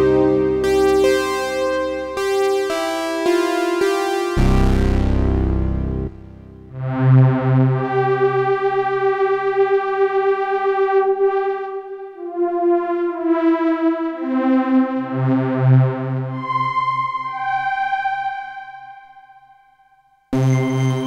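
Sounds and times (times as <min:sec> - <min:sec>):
synthesizer chords: 0:00.0 - 0:09.2, 0:14.9 - 0:19.6, 0:20.4 - 0:21.0
deep bass note: 0:04.4 - 0:06.9.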